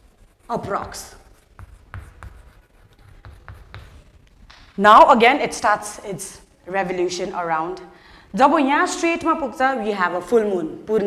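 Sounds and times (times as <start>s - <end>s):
pen scratching and tapping: 0.1s - 4.8s.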